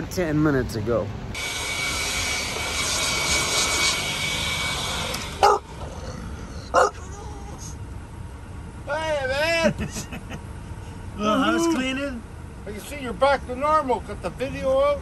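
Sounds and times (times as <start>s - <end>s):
small motor whining: 1.4s - 6.8s.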